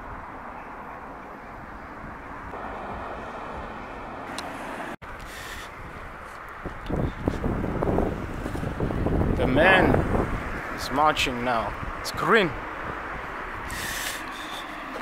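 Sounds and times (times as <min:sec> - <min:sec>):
traffic noise: 0:00.0 - 0:15.0
car driving past: 0:02.5 - 0:05.0.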